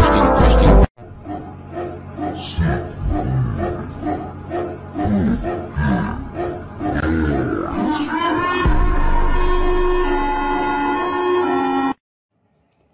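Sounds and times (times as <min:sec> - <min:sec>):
electronic music with distorted bass: 0:00.0 - 0:00.9.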